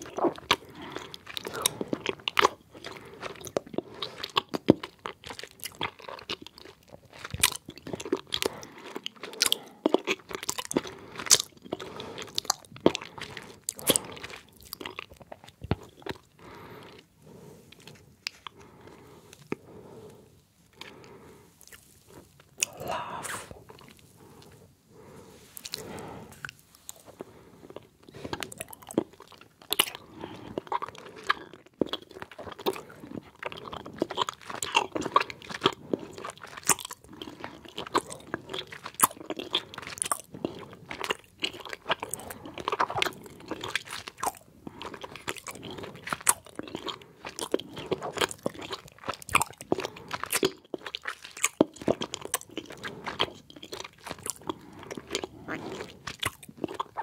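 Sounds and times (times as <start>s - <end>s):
chewing gummy candy: 0.0s - 57.0s.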